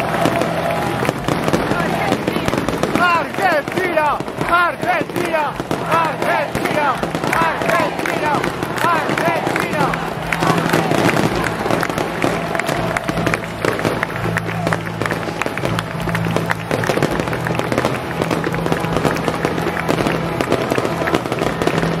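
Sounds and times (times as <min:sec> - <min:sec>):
fireworks crackling and banging: 0:00.0 - 0:22.0.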